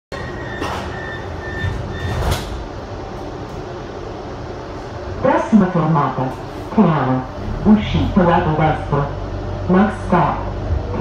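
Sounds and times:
train rumbling in tunnel: 0.1 - 11.0.

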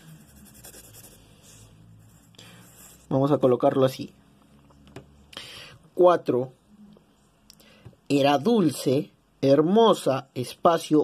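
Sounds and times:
pencil scratching on paper: 0.0 - 3.1.

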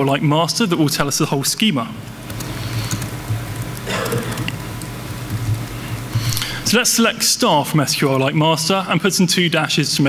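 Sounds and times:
electrical hum and hiss: 0.0 - 10.0
laptop keyboard typing: 2.2 - 6.7.

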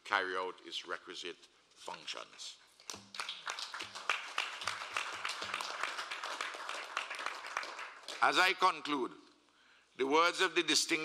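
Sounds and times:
audience applause: 3.1 - 8.3.

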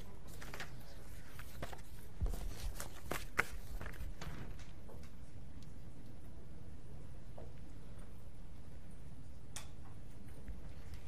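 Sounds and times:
room hum: 0.0 - 11.0.

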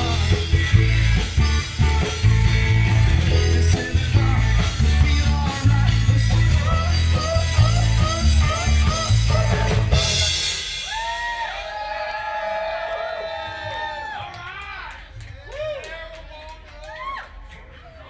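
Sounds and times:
funk-rock band playing: 0.0 - 11.3
crowd whooping and yelling: 10.5 - 17.6
handclaps: 13.9 - 17.7.

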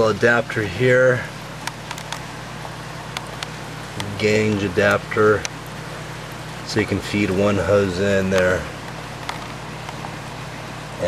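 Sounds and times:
air pump humming: 0.0 - 11.0.

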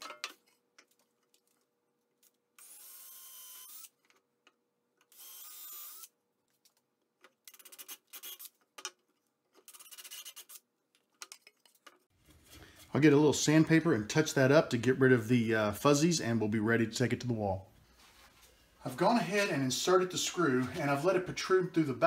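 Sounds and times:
cordless drill drilling wood: 2.6 - 3.9, 5.1 - 6.1, 7.7 - 8.5.

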